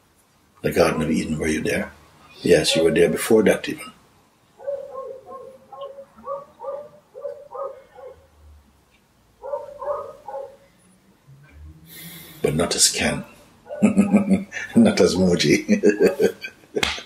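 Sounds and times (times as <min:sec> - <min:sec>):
dog barking: 0:02.7 - 0:03.2, 0:04.6 - 0:08.3, 0:09.4 - 0:10.6, 0:13.7 - 0:14.4.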